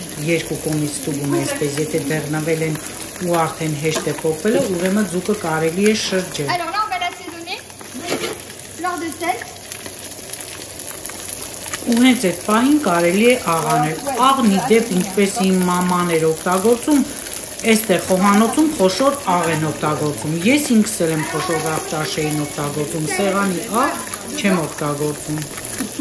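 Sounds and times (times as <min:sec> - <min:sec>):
people talking: 0:00.0 - 0:09.5, 0:11.8 - 0:26.0
fish sizzling in a pan: 0:00.0 - 0:26.0.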